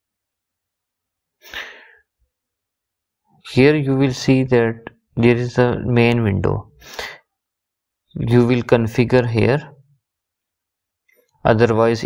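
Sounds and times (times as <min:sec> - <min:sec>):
sharp breath into microphone: 0:01.4 - 0:02.1.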